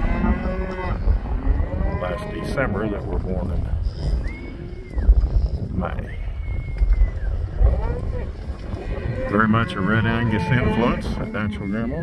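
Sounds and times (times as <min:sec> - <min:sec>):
cattle mooing: 0:00.0 - 0:03.5, 0:07.6 - 0:12.0
steady low rumble: 0:00.0 - 0:12.0.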